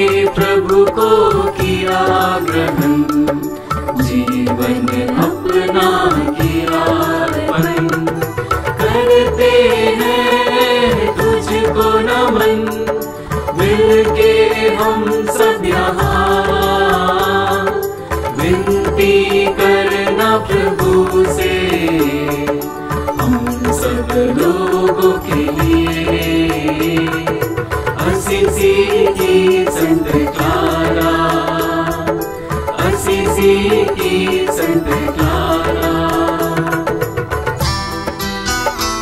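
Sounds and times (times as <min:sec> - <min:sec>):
devotional hymn singing: 0:00.0 - 0:37.5
instrumental melody line: 0:00.0 - 0:39.0
steady percussion beat: 0:00.0 - 0:39.0.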